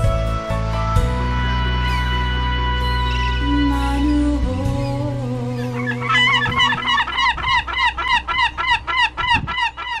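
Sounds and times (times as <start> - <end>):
song closing chord: 0.0 - 7.0
gull calling: 5.5 - 10.0.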